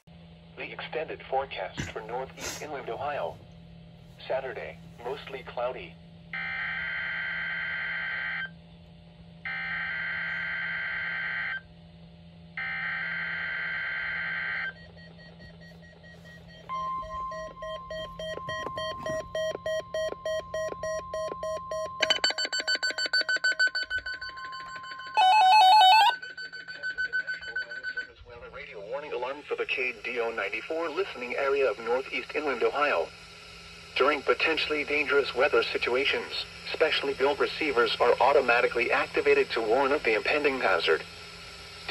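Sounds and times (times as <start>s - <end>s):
loud alarm burst: 12.6s - 41.0s
receivers beeping in fast pulses: 14.4s - 28.8s
raspy data bursts: 16.1s - 41.0s
steady high alert tone: 16.2s - 20.5s, 21.5s - 30.3s.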